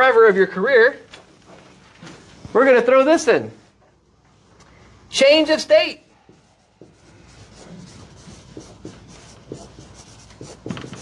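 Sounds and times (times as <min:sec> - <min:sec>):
marker scratching on whiteboard: 0:06.0 - 0:11.0.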